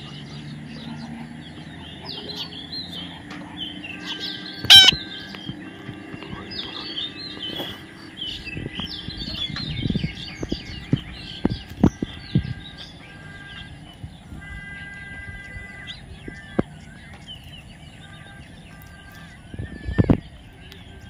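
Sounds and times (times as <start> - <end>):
parakeets chirping: 0.0 - 21.0
parakeet squawk: 3.9 - 5.4.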